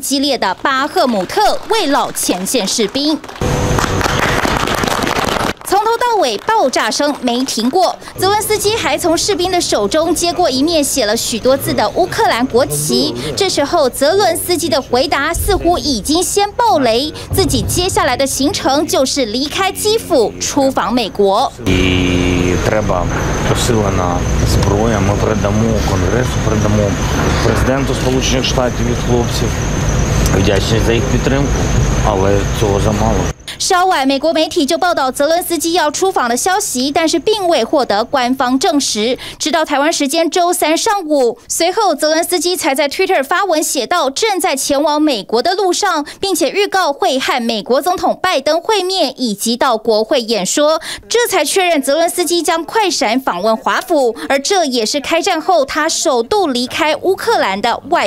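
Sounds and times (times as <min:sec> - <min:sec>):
narrator speaking: 0:06.2 - 0:29.6, 0:50.6 - 0:58.0
faint high whine: 0:07.8 - 0:41.0
man speaking: 0:10.0 - 0:10.8, 0:11.5 - 0:13.5, 0:14.6 - 0:16.0, 0:16.8 - 0:17.4, 0:18.5 - 0:33.3
low rumble: 0:11.8 - 0:33.3
dense rushing noise: 0:15.1 - 0:20.7, 0:21.4 - 0:33.3.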